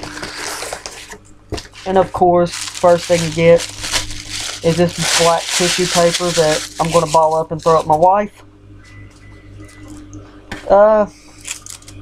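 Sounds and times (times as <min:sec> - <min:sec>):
tissue paper rustling: 0:00.0 - 0:07.9, 0:11.3 - 0:11.9
faint steady hum: 0:00.0 - 0:12.0.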